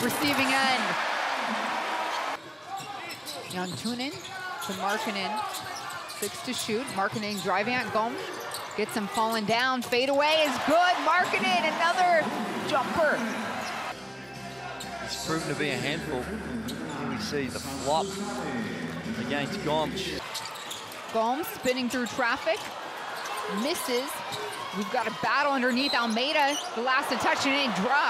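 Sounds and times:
basketball court sound: 0.0s - 14.0s
arena crowd noise: 0.0s - 28.0s.

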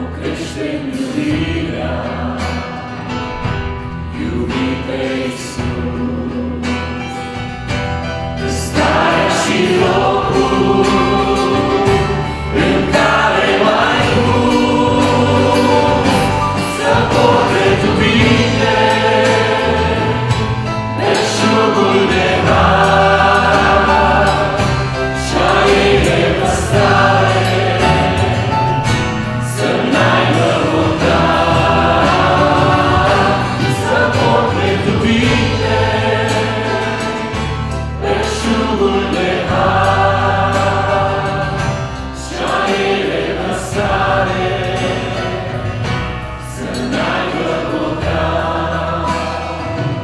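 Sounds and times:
men and women singing: 0.0s - 7.2s, 8.4s - 50.0s
acoustic guitar: 0.0s - 50.0s
drums: 0.0s - 50.0s
electric bass: 0.0s - 50.0s.

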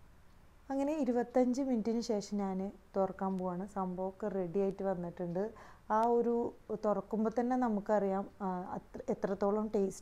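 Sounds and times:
woman talking: 0.7s - 10.0s.

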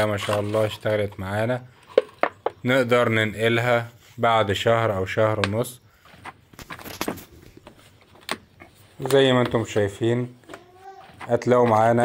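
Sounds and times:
plastic bottle clicks and knocks: 1.9s - 2.6s.

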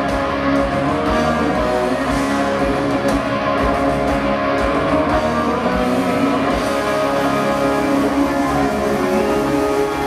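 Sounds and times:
bass: 0.0s - 10.0s
drums: 0.0s - 10.0s
electric guitars playing: 0.0s - 10.0s.

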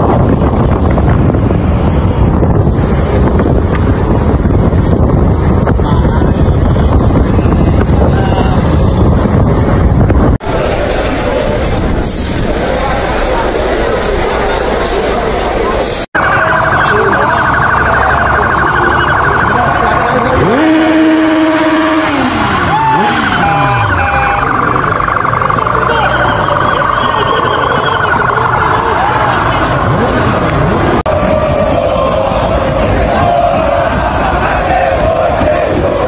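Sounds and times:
street crowd noise: 0.0s - 36.0s
sirens wailing: 16.2s - 31.1s.

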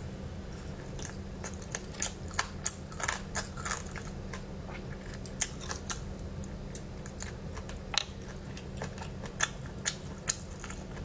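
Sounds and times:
steady low hum: 0.0s - 11.0s
person chewing and sucking meat: 0.6s - 11.0s.

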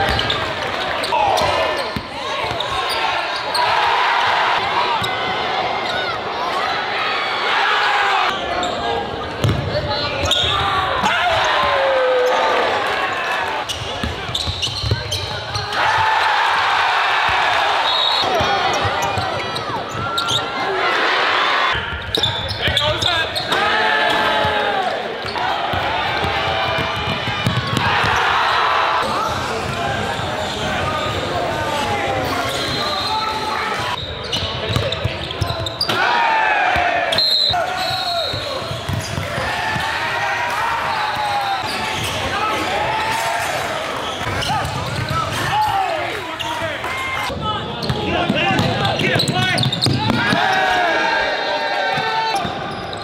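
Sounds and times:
sneakers squeaking: 0.0s - 6.6s, 8.3s - 11.6s, 12.2s - 16.0s, 17.2s - 20.7s, 21.7s - 36.1s, 36.8s - 40.2s, 40.8s - 53.0s
voices echoing in a hall: 0.0s - 53.0s
basketball bouncing on hardwood: 26.2s - 28.2s.

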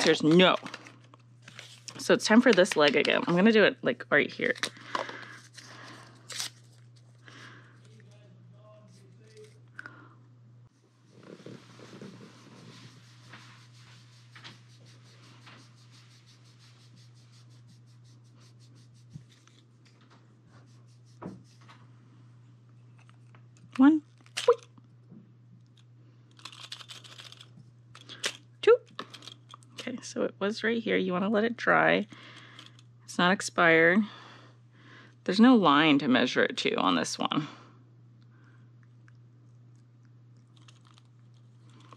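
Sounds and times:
plastic clicks and rustling: 0.0s - 3.4s
faint low hum: 0.0s - 41.9s
packet tearing: 4.5s - 7.0s.

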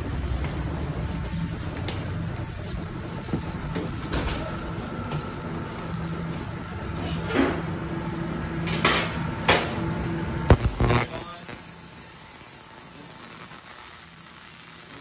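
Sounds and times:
equipment humming: 10.5s - 15.0s.

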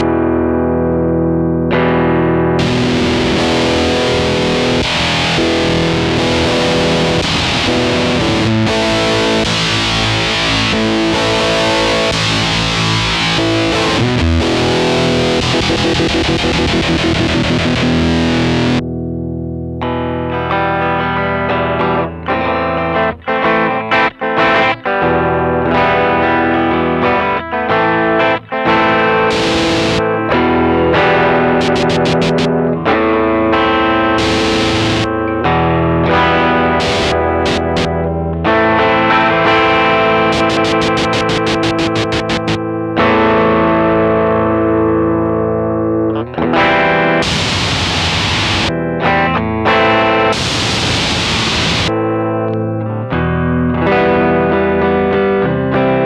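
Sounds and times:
fuzz electric guitar: 0.0s - 56.0s.

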